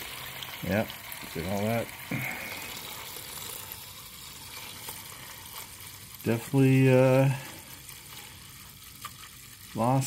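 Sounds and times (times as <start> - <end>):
oil pouring into a drain pan: 0.0 - 10.0.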